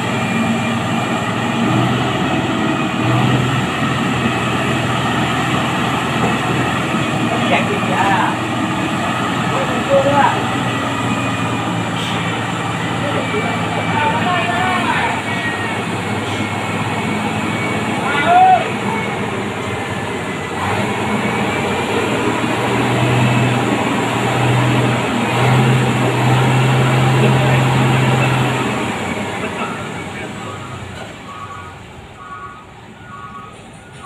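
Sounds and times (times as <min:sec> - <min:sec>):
truck diesel engine pulling uphill: 0:00.0 - 0:34.0
voices calling out: 0:00.0 - 0:34.0
person shouting: 0:18.2 - 0:18.7.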